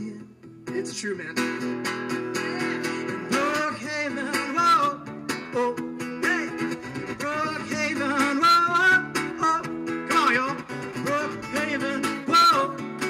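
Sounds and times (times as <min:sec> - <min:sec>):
man singing: 0:00.0 - 0:13.0
strummed acoustic guitar: 0:00.0 - 0:13.0.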